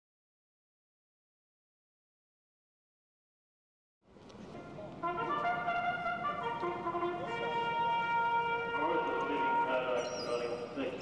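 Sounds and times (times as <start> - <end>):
brass music with trumpets: 4.6 - 11.0.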